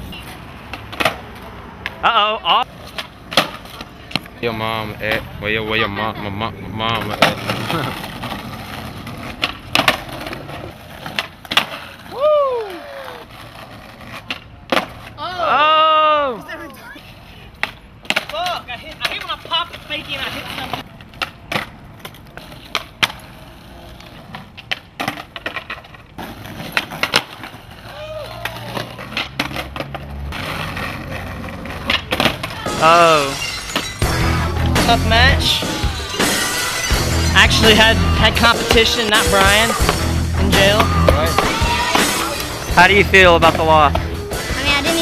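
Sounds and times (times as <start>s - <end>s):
skateboard tails clacking: 0.0s - 6.1s, 6.8s - 15.5s, 16.5s - 45.0s
skateboards rolling on asphalt: 0.0s - 45.0s
people shouting and whooping: 12.0s - 13.4s, 15.2s - 16.8s, 27.8s - 29.0s, 35.6s - 36.6s, 41.0s - 42.6s.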